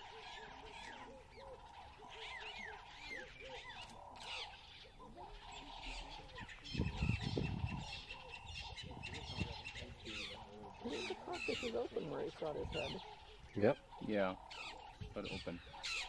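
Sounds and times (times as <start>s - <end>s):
birds chirping and calling: 0.0s - 16.0s.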